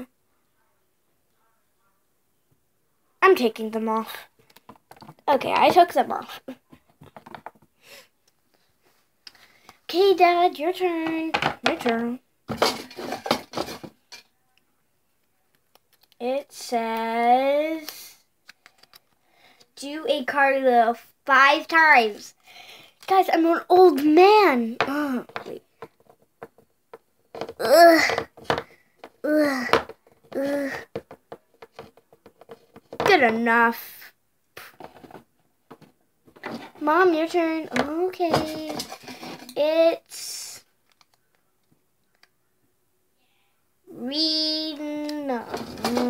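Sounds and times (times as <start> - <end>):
plastic toy figurines tapping on table: 11.3 - 13.8, 24.8 - 30.0.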